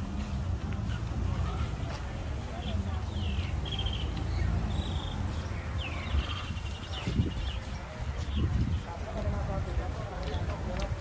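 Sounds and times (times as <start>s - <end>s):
small birds chirping: 2.4s - 9.3s.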